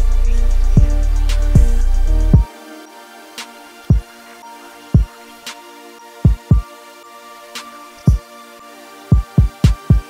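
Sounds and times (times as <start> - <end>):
deep bass hits: 0.0 - 2.4
sustained synth pad: 0.0 - 9.6.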